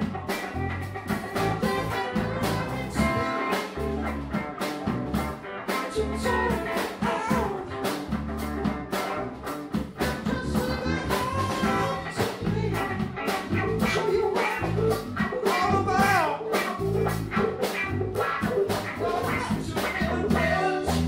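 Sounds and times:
live rock band playing: 0.0 - 21.0
man singing lead: 1.4 - 4.2, 5.6 - 8.1, 10.0 - 17.2, 18.7 - 21.0.

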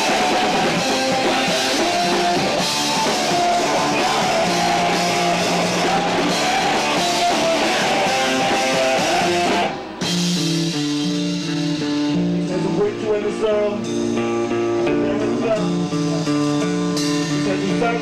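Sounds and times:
drums and crashing cymbals: 0.0 - 14.6
distorted electric guitars: 0.0 - 18.0.

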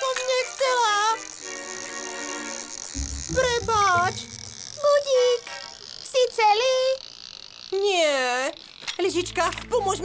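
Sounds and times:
low buzz: 2.8 - 7.8
held musical tone: 3.0 - 4.9.

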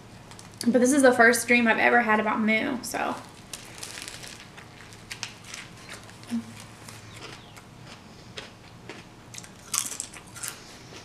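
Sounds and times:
potato chip crunching: 3.1 - 11.0.

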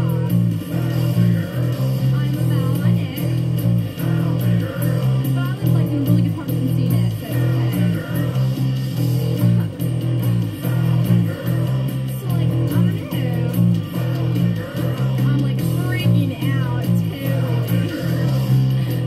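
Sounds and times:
band recording with drums and guitar: 0.0 - 19.0
bass guitar playing repeated low notes: 0.0 - 19.0.

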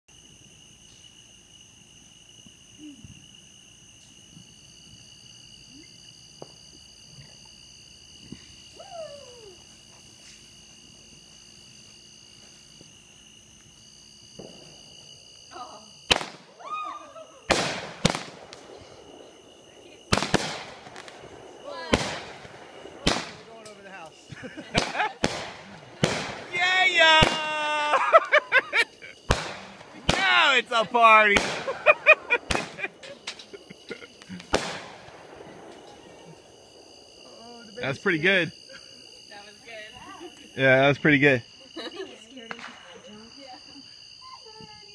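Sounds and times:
fireworks bangs: 14.3 - 15.2, 16.0 - 16.6, 17.4 - 37.1, 42.5 - 43.1
firework fuse hiss: 17.5 - 36.4.

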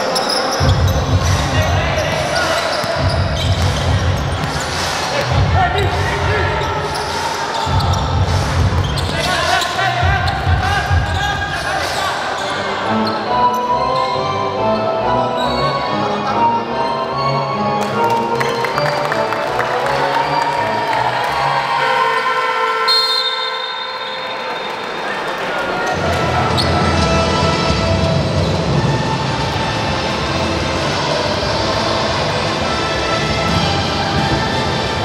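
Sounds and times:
background music with sustained tones: 26.1 - 35.0.

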